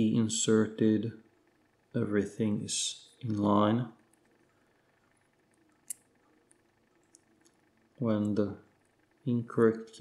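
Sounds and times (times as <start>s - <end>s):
small metallic clicks: 4.0s - 9.0s.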